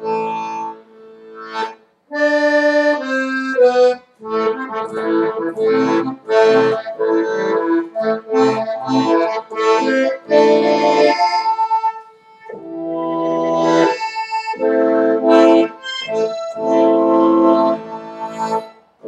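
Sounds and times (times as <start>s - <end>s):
piano accordion playing chords: 0.0s - 19.0s.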